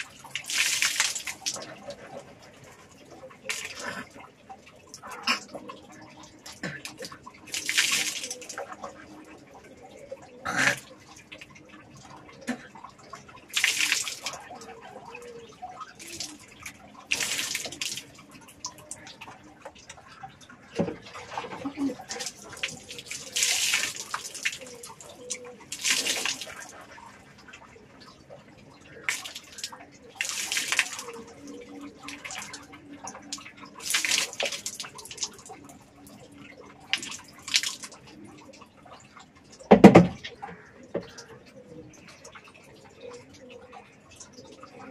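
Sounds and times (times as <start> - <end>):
water pouring and splashing: 0.0 - 44.9.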